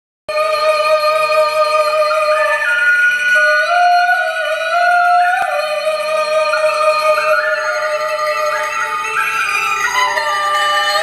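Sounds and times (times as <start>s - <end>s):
live ensemble music: 1.2s - 11.0s.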